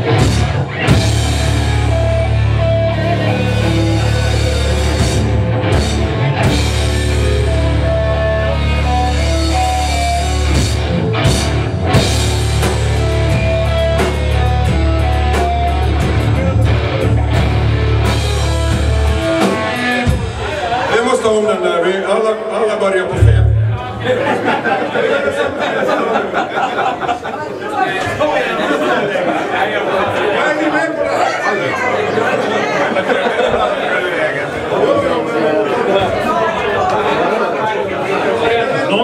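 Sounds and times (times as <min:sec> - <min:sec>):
metal band playing live: 0:00.0 - 0:21.6, 0:23.1 - 0:24.8.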